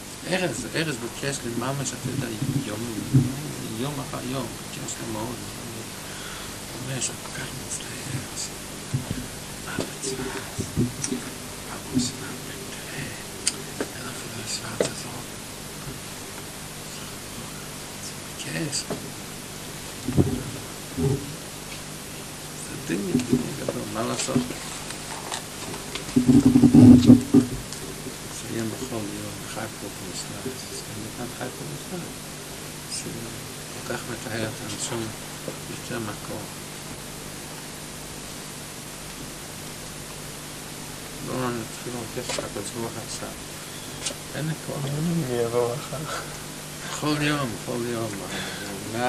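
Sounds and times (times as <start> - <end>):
man's voice: 0.0 - 15.3, 16.9 - 19.0, 22.6 - 24.6, 28.3 - 32.1, 32.9 - 36.5, 41.2 - 43.4, 44.4 - 49.0
background hiss: 0.0 - 49.0
faint low hum: 0.0 - 49.0.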